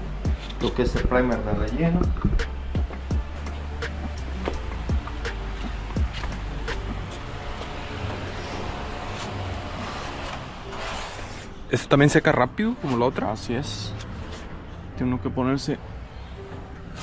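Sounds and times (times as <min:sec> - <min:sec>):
low vehicle engine rumble: 0:00.0 - 0:10.8
faint music: 0:00.0 - 0:17.0.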